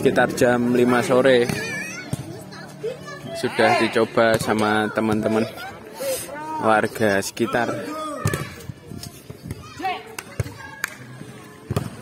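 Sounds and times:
hands slapping volleyball: 0:10.1 - 0:11.0.

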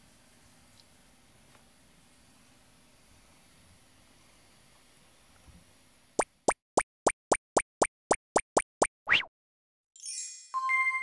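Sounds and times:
cartoon plops: 0:06.2 - 0:09.3.

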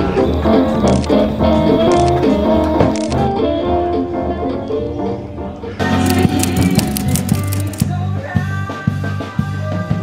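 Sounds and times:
band playing: 0:05.8 - 0:08.0.

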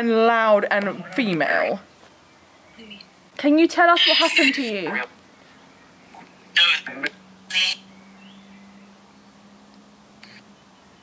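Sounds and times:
voice-like fragment from phone: 0:06.6 - 0:07.8.

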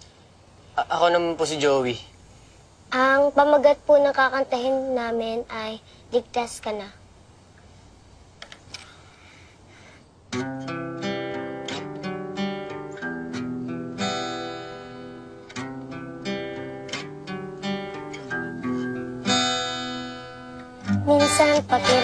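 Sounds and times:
acoustic guitar chords: 0:10.3 - 0:22.0.

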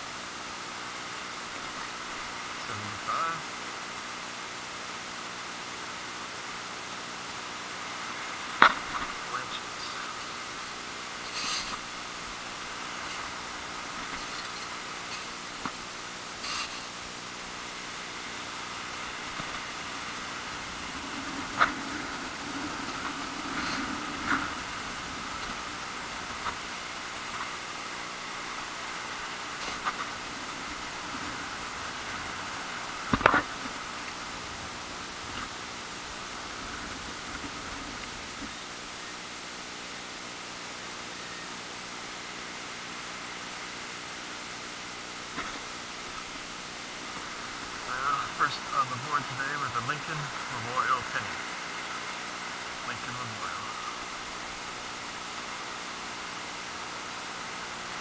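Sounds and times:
wind hiss on microphone: 0:00.0 - 0:41.0.

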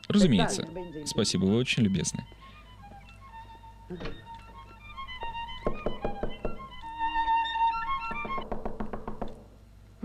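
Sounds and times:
violin playing a melody: 0:00.2 - 0:08.4.

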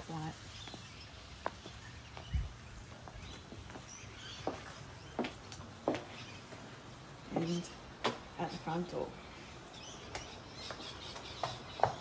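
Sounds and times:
footsteps on concrete: 0:00.0 - 0:12.0.

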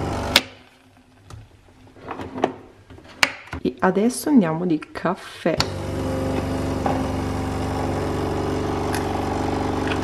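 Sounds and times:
capsule machine pump buzzing: 0:05.6 - 0:10.0.

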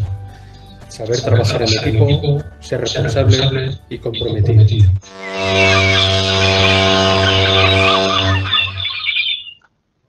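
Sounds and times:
low held tone: 0:04.7 - 0:09.6
birds chirping: 0:05.1 - 0:09.6.

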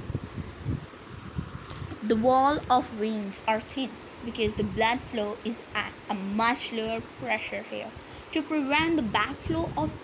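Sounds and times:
low rumble on microphone: 0:00.0 - 0:02.0.

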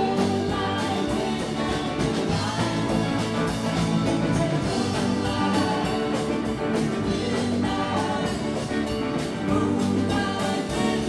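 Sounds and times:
bass guitar: 0:00.0 - 0:11.0
hollow-body electric guitar: 0:00.0 - 0:11.0
second electric guitar: 0:00.0 - 0:11.0.

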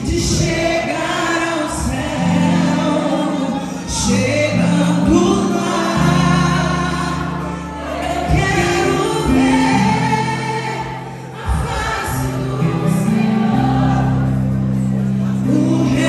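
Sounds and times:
woman singing into microphone: 0:00.0 - 0:14.1
held backing chords: 0:00.0 - 0:16.0.

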